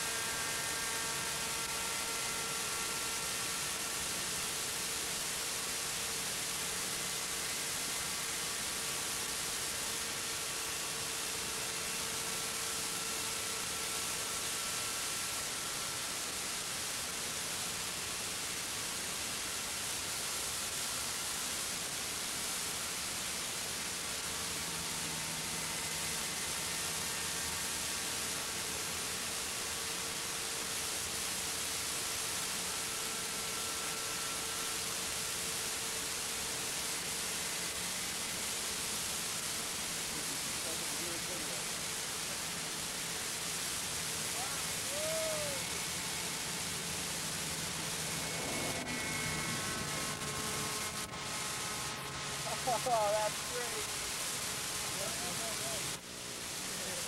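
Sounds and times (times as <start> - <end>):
model helicopter engine and rotors: 0.0 - 57.0.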